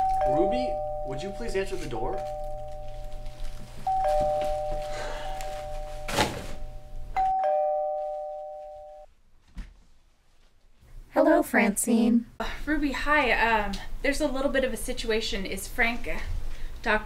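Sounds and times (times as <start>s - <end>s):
two-note doorbell chime: 0.0s - 9.1s.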